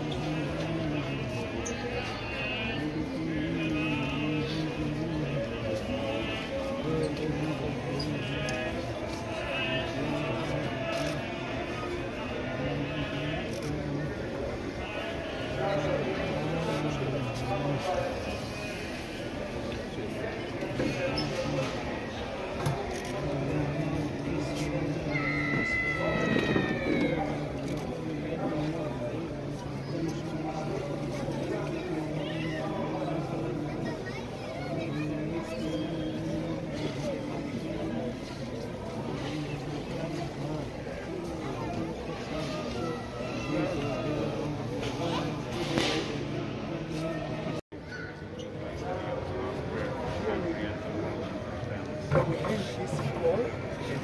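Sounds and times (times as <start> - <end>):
man chanting a prayer: 0.0 - 10.9
men chanting prayer: 0.0 - 22.2
crowd murmur: 0.0 - 54.0.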